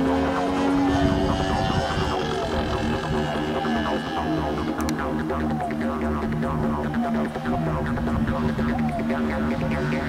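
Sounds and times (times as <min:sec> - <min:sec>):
electronic music: 0:00.0 - 0:10.0
model aircraft engine droning: 0:00.0 - 0:10.0.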